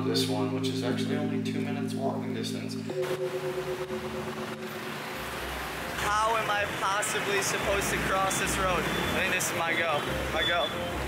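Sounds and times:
scooter engines passing: 0:02.9 - 0:11.0.

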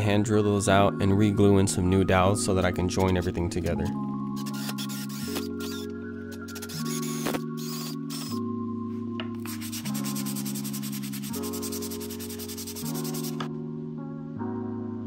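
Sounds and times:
background music: 0:00.0 - 0:15.0
hand sanding wood: 0:09.5 - 0:13.4.

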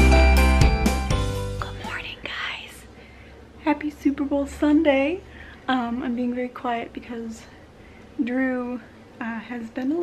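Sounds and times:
woman whispering: 0:01.6 - 0:02.9.

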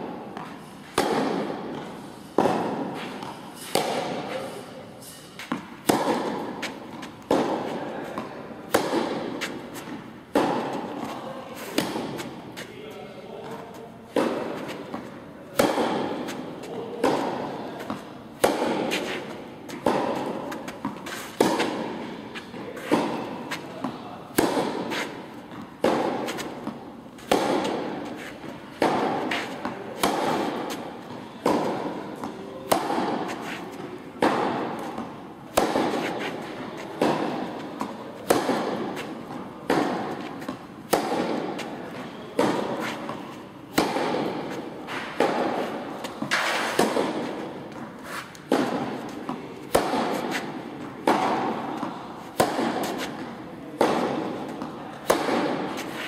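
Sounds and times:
tennis ball bouncing: 0:00.0 - 0:12.7, 0:13.4 - 0:56.0
tennis ball hit with rackets: 0:00.0 - 0:12.8, 0:13.4 - 0:56.0.

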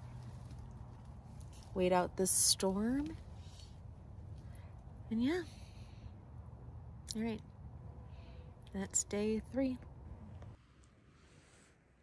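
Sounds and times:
woman speaking: 0:01.8 - 0:03.2, 0:05.1 - 0:05.6, 0:07.1 - 0:07.4, 0:08.7 - 0:09.8.

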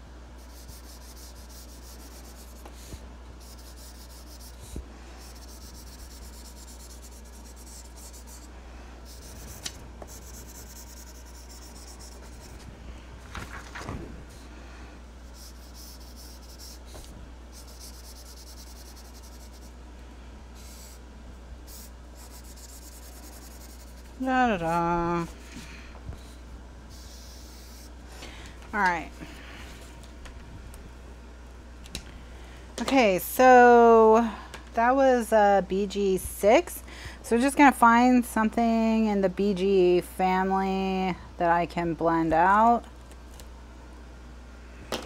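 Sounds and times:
steady low hum: 0:00.0 - 0:45.0
marker scratching on paper: 0:00.4 - 0:08.5, 0:09.1 - 0:12.6, 0:15.3 - 0:19.7, 0:20.6 - 0:21.0, 0:21.7 - 0:25.3, 0:26.2 - 0:27.9.

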